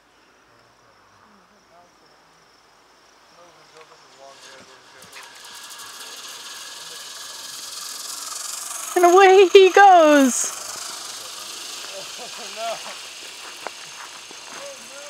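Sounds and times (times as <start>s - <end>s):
zipline pulley rolling on cable: 4.0s - 15.0s.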